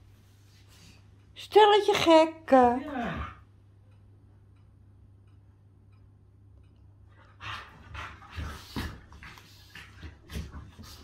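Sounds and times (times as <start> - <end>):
dogs breathing noisily: 7.2 - 11.0.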